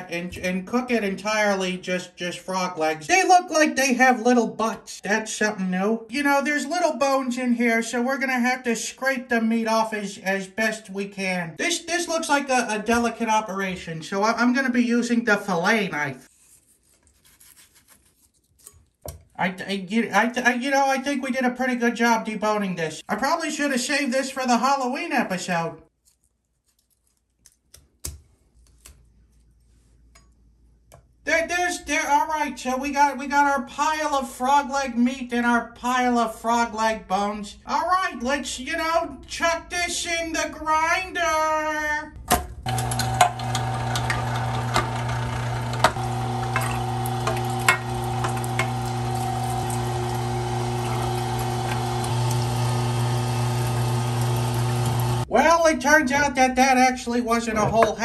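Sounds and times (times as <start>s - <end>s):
meat grinder motor humming: 42.6s - 55.3s.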